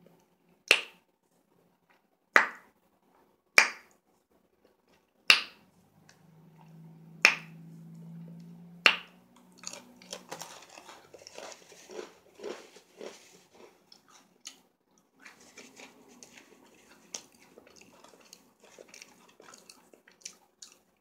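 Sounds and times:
low steady hum: 0:05.6 - 0:21.0.

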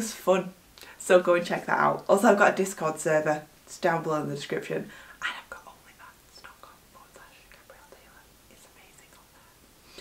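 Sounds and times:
woman whispering: 0:05.0 - 0:09.6.

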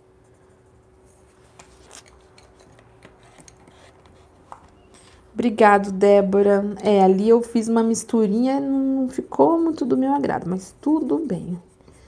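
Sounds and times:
pencil scratching on paper: 0:00.6 - 0:04.6.

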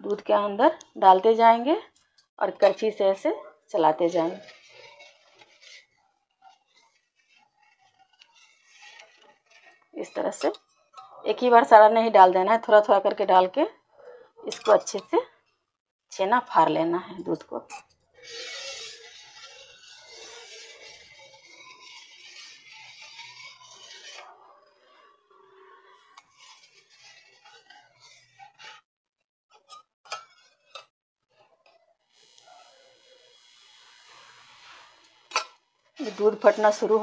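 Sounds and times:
spoon scraping a steel pan: 0:02.6 - 0:03.2, 0:04.0 - 0:13.5, 0:14.5 - 0:15.2, 0:17.1 - 0:28.8, 0:29.5 - 0:31.8, 0:32.4 - 0:37.0.

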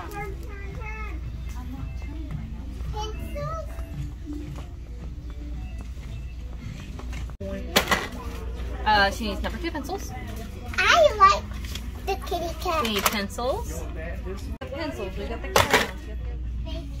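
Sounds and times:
child's voice: 0:00.0 - 0:01.6, 0:02.8 - 0:04.1, 0:10.7 - 0:11.5, 0:12.1 - 0:12.8
background music: 0:00.0 - 0:17.0.

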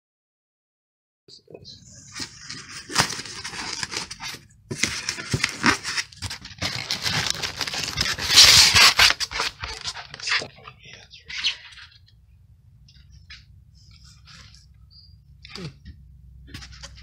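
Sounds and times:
foam scraping and crackling: 0:02.0 - 0:10.5.

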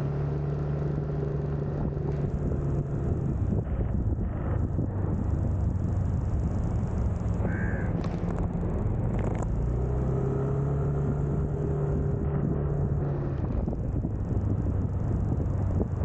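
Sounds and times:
motor scooter engine cruising: 0:00.0 - 0:16.0
road and wind noise: 0:00.0 - 0:16.0.

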